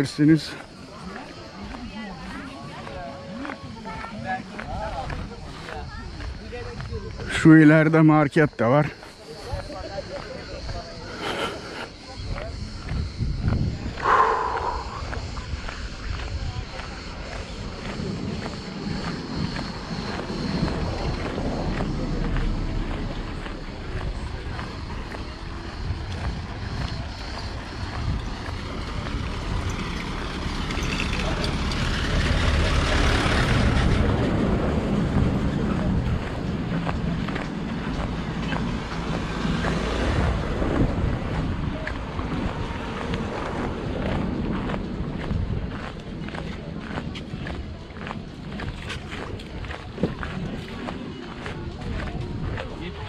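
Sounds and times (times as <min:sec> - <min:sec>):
car driving on gravel: 0:00.0 - 0:53.0
background voices: 0:08.9 - 0:53.0
wind on microphone: 0:09.5 - 0:53.0.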